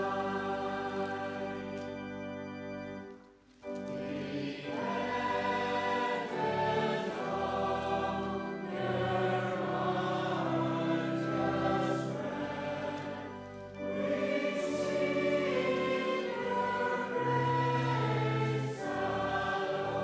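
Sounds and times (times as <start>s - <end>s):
congregation singing a hymn: 0.0s - 20.0s
held low accompanying notes: 0.0s - 20.0s.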